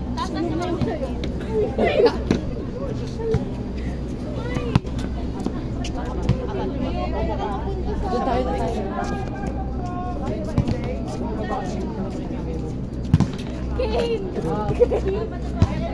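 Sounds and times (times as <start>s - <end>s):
people talking: 0.0s - 15.9s.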